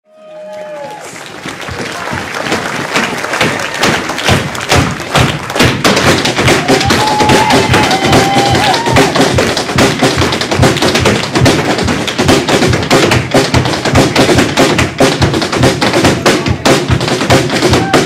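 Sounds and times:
dance footwork on stage floor: 0.8s - 18.0s
band with snare drum: 1.7s - 18.0s.

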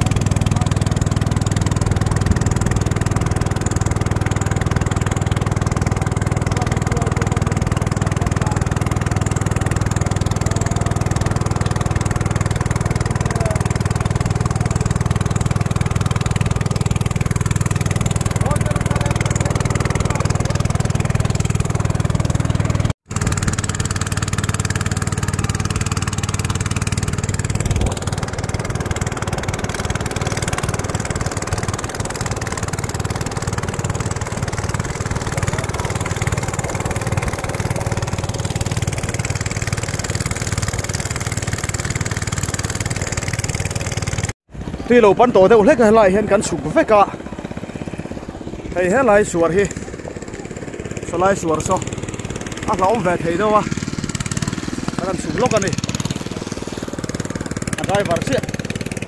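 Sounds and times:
boat motor droning: 0.0s - 59.0s.

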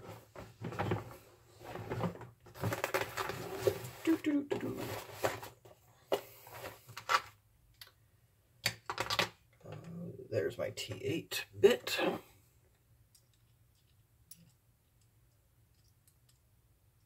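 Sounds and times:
rummaging among tools: 0.0s - 7.4s.

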